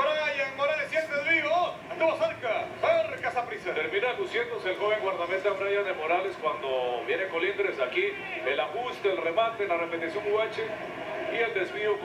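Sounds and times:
man talking on sports broadcast: 0.0 - 12.0.

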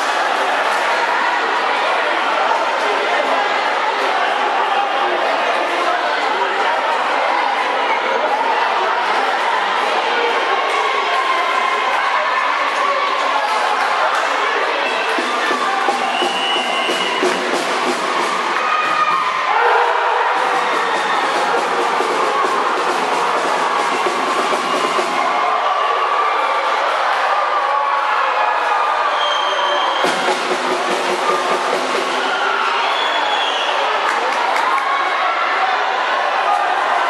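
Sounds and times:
crowd shouting and cheering: 0.0 - 37.0.

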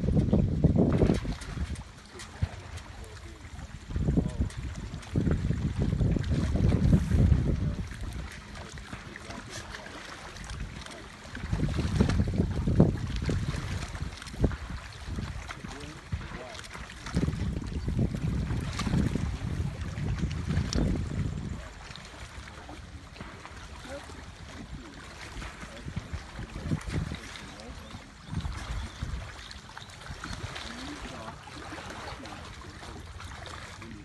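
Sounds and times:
wind gusts rumbling on microphone: 0.0 - 34.0.

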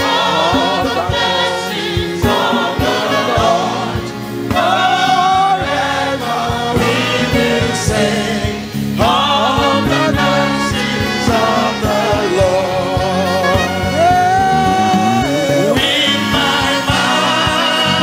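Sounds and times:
choir and congregation singing: 0.0 - 18.0
instrumental accompaniment with beat: 0.0 - 18.0.

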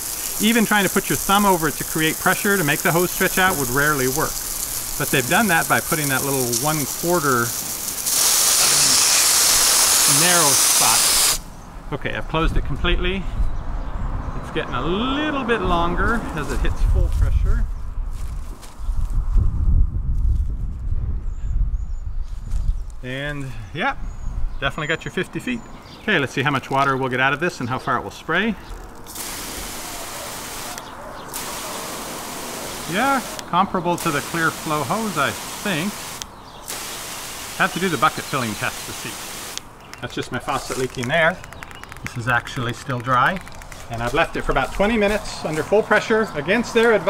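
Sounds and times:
water hissing from hose nozzle: 0.0 - 11.5, 28.8 - 39.7.

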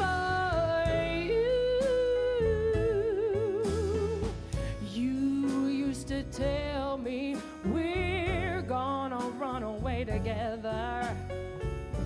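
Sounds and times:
live band drums: 0.0 - 12.0.

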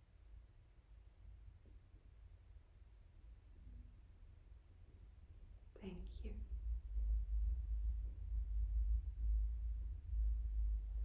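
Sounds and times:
low rumble: 5.3 - 11.0
person whispering: 5.8 - 6.4.

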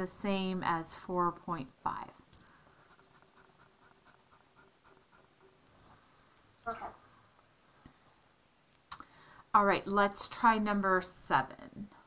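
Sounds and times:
eraser rubbing on paper: 2.8 - 6.0.

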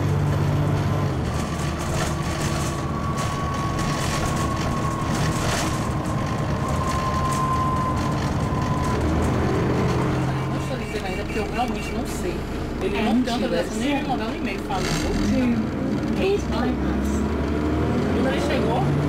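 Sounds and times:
bus diesel engine: 0.0 - 19.0.

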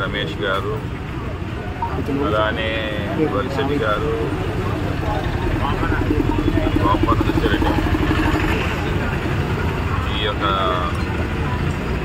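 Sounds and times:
people's voices: 0.0 - 12.0
vehicle engine running: 2.4 - 12.0.

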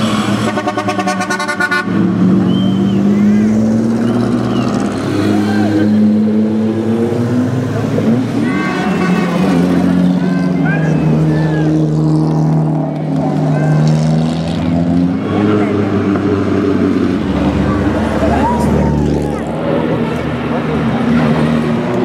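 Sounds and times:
racing car engines passing: 0.0 - 22.0
crowd chatter: 6.9 - 22.0.

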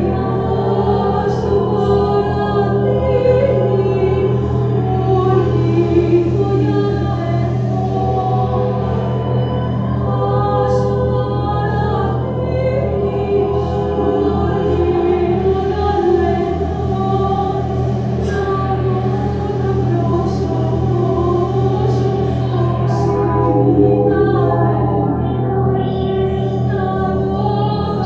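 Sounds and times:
steady low drone: 0.0 - 28.0.

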